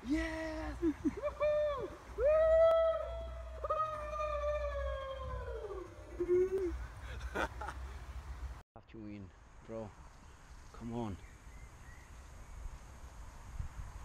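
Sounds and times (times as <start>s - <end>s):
man yelling in celebration: 0.0s - 5.9s.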